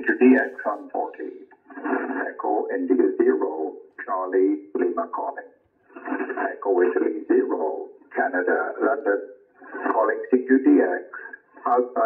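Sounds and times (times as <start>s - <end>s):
thin speech from radio speaker: 0.0s - 12.0s.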